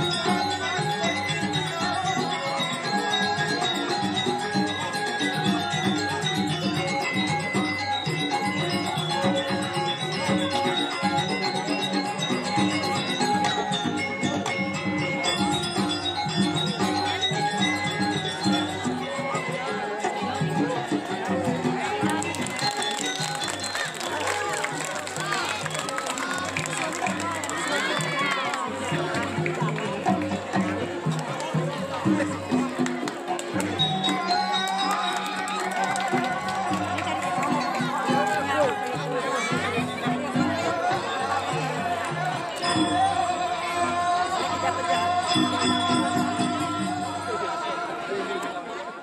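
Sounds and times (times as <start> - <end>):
gamelan playing: 0.0 - 47.8
people chattering: 0.0 - 49.0
people's voices: 0.0 - 49.0.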